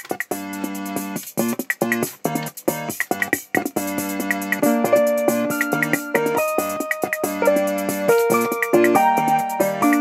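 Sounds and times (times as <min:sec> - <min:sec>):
electronic plucked chords: 0:00.3 - 0:10.0.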